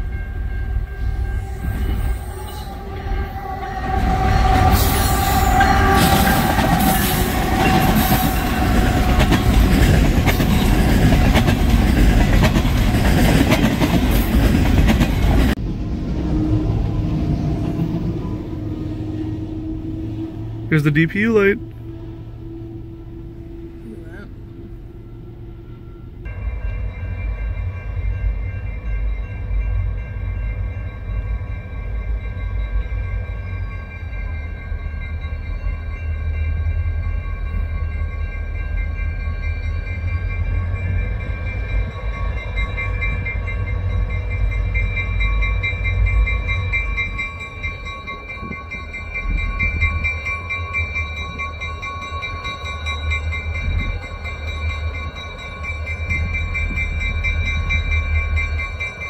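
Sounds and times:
railroad crossing bells ringing: 0.0s - 15.6s, 19.4s - 59.0s.

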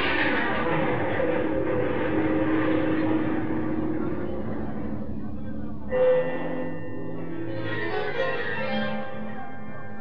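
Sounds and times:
sustained low synth note: 1.1s - 7.6s.

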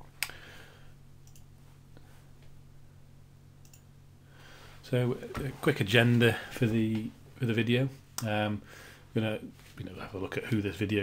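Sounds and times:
low electrical hum: 0.0s - 11.0s
computer mouse clicks: 1.2s - 1.5s, 3.6s - 3.9s.

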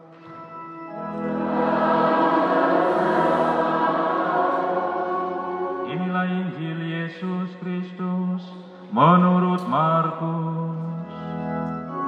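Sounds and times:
choir singing: 1.0s - 7.7s
man chanting: 5.8s - 10.9s.

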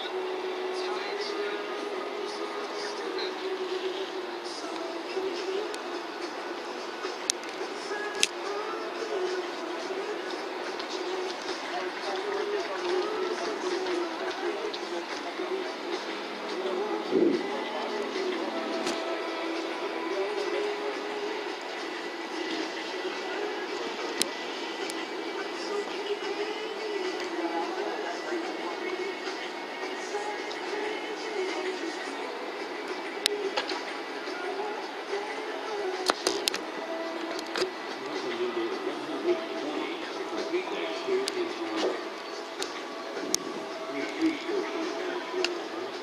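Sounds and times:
ambient wash: 0.0s - 46.0s
background music: 0.0s - 46.0s
indistinct voices: 0.0s - 46.0s.

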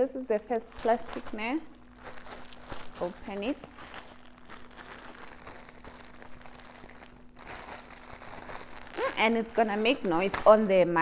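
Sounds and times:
plastic bag rustling: 0.4s - 11.0s.

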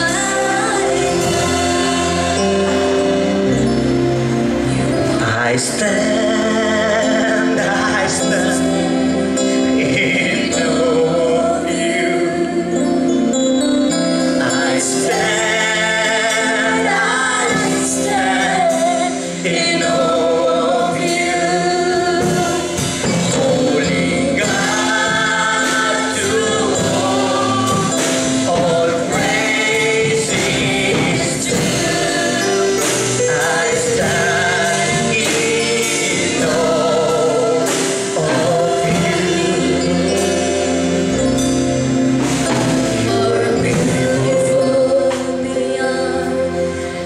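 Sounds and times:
held accompaniment notes: 0.0s - 47.0s
man singing into a microphone: 5.0s - 12.7s, 14.4s - 40.9s, 43.0s - 46.0s.

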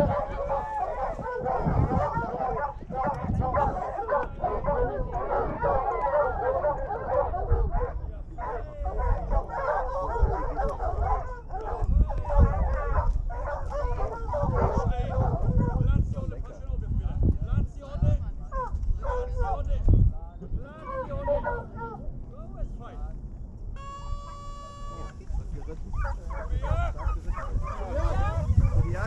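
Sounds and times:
hounds whining and yelping: 0.0s - 15.8s, 20.8s - 22.0s, 25.9s - 29.0s.

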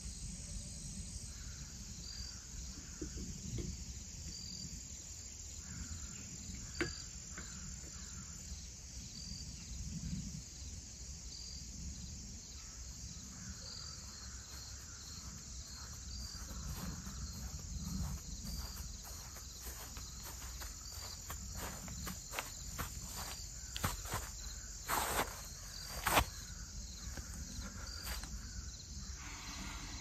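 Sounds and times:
insects humming: 0.0s - 30.0s.

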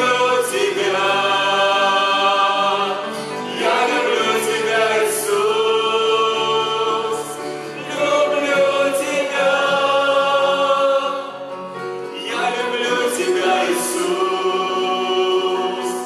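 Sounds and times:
mixed choir singing in harmony: 0.0s - 16.0s.

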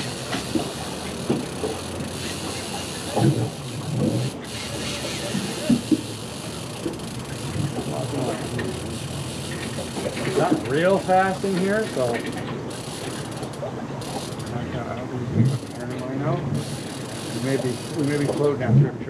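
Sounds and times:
boat background noise: 0.0s - 19.0s.

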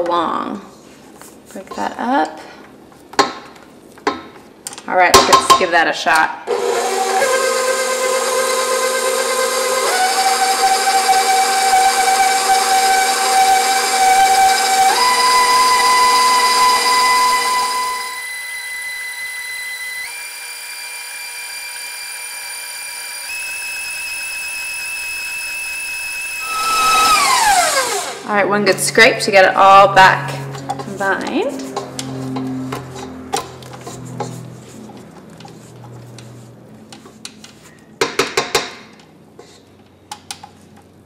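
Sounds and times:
stand mixer motor whining: 6.5s - 28.3s.

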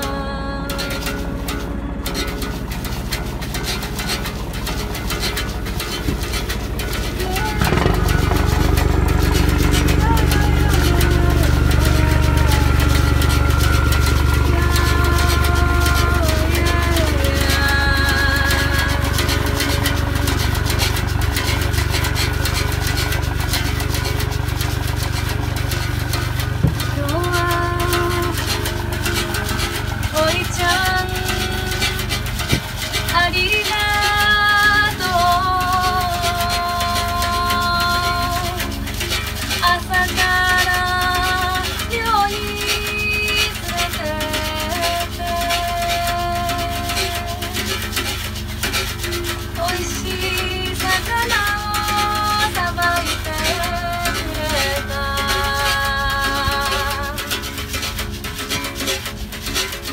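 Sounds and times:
woman singing: 0.0s - 2.4s, 7.0s - 23.7s, 26.6s - 48.2s, 49.0s - 57.7s
boat engine drone: 0.0s - 59.9s.

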